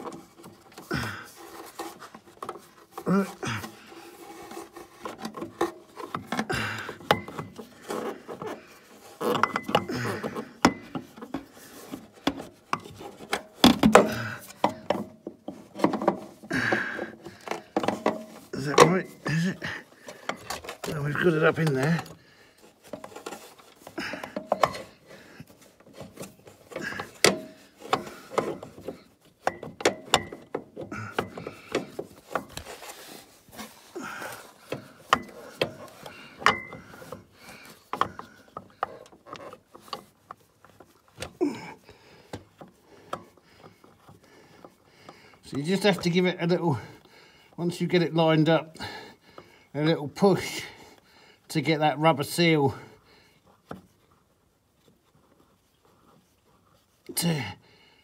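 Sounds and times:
metal clicks and knocks: 9.3s - 19.1s, 25.8s - 32.8s, 34.4s - 41.4s.

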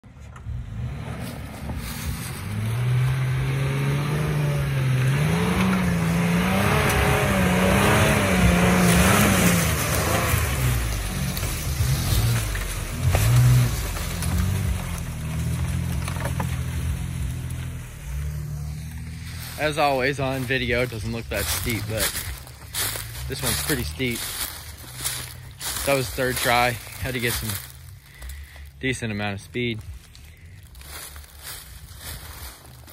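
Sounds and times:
engine revving under load: 0.0s - 32.9s
low steady rumble: 0.0s - 32.9s
tyres churning through leaves and dirt: 0.0s - 32.9s.

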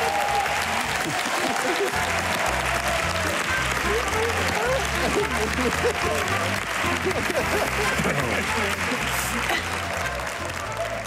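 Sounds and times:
audience applauding: 0.0s - 11.0s
background music: 0.0s - 11.0s.

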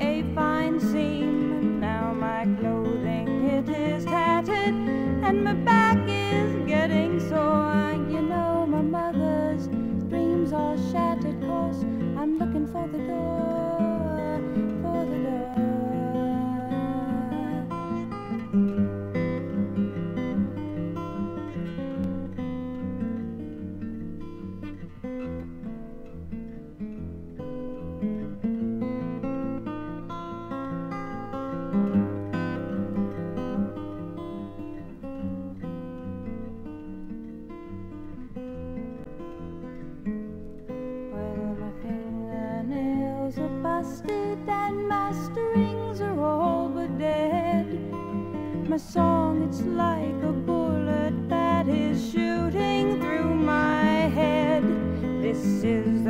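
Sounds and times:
acoustic guitar strumming: 0.0s - 56.0s.

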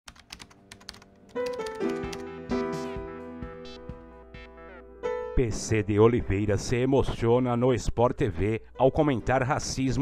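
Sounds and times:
keyboard typing clicks: 0.1s - 2.3s
music with sustained notes: 0.8s - 5.4s.

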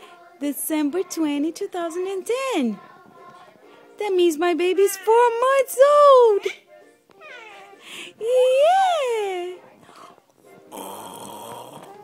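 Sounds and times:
baby cooing: 7.2s - 8.7s.

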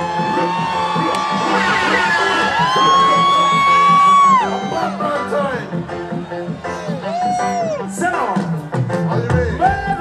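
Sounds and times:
crowd whooping: 0.0s - 8.7s
live reggae band playing: 0.0s - 10.0s.

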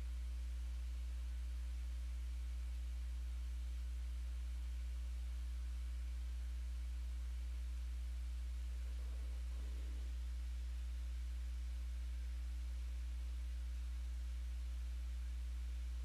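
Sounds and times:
low electrical hum: 0.0s - 16.0s.

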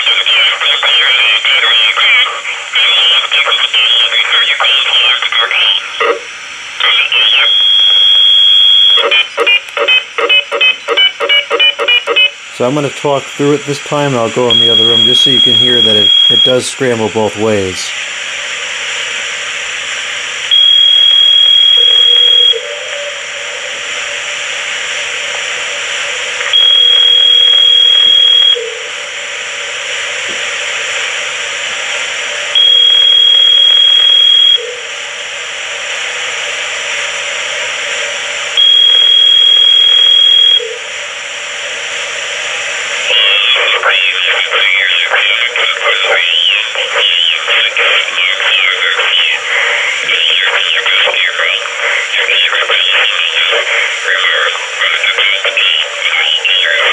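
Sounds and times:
garbled scrambled speech: 0.0s - 6.2s, 6.8s - 7.6s, 12.6s - 18.0s, 43.1s - 56.9s
hissy radio noise: 0.0s - 56.9s
high steady ringing tone: 7.3s - 10.6s, 13.4s - 17.1s, 20.5s - 24.3s, 26.4s - 29.1s, 32.5s - 35.0s, 38.5s - 41.0s.

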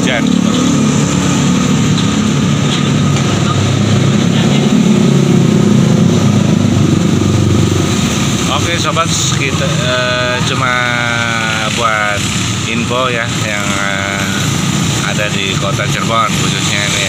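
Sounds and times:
motorcycle engine running: 0.0s - 17.0s
passing street traffic: 0.0s - 17.0s.

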